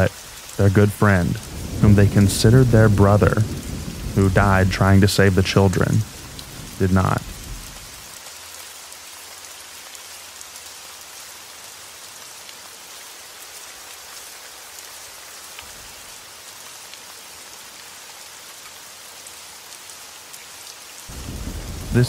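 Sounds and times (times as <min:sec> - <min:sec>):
steady rain hiss: 0:00.0 - 0:22.0.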